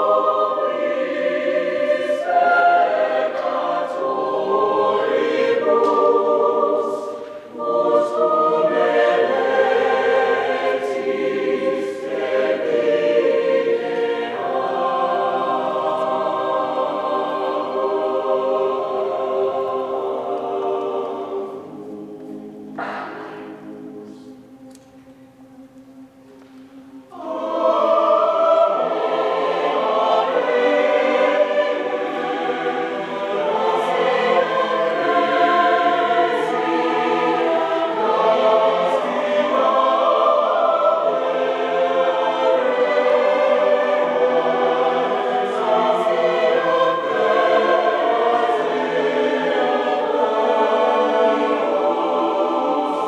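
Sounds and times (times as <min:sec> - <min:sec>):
choir singing unaccompanied: 0:00.0 - 0:53.0.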